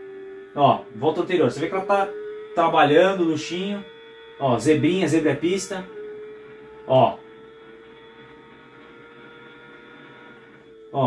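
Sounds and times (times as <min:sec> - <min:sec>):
motorcycle engine drone: 0:00.0 - 0:11.0.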